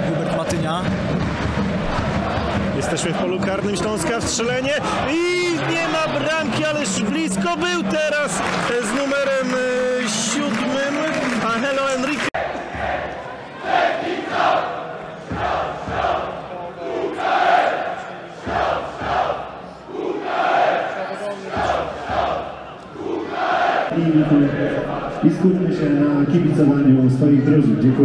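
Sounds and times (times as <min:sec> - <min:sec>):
football crowd chanting: 0:00.0 - 0:11.4, 0:12.2 - 0:25.7.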